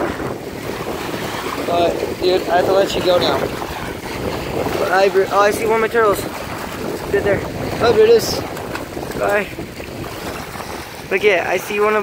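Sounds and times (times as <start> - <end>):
small waves splashing over rocks: 0.0 - 12.0
wind buffeting microphone: 0.0 - 12.0.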